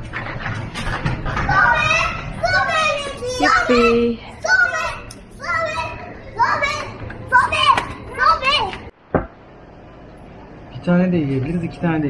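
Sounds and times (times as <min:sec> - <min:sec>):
young children talking: 0:01.4 - 0:08.9.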